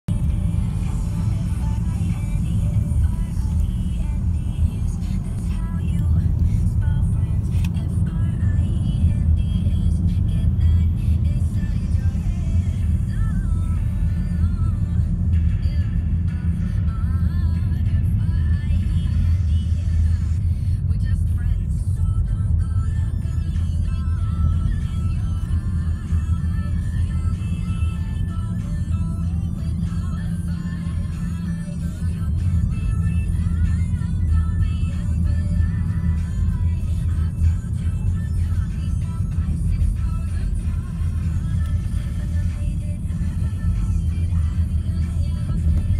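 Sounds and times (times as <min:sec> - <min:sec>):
car driving rumble inside cabin: 0:00.0 - 0:45.9
music with singing voice: 0:00.1 - 0:45.9.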